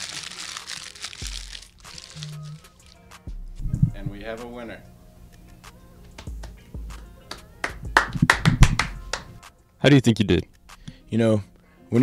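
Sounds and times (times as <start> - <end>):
background music: 0.0 - 12.0
hand claps: 5.6 - 9.5.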